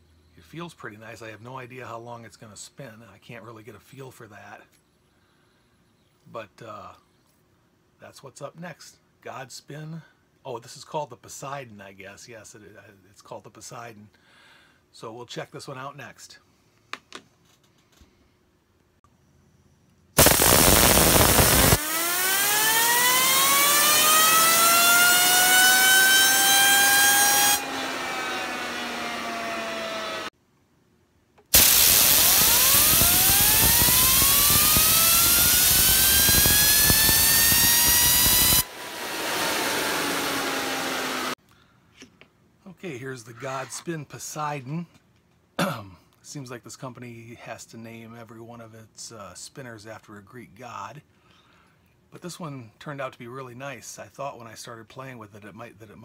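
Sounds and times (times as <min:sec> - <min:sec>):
compressed air hissing: 0:20.2 - 0:21.8, 0:31.5 - 0:40.5
spinner whine: 0:20.2 - 0:30.3, 0:31.5 - 0:41.4.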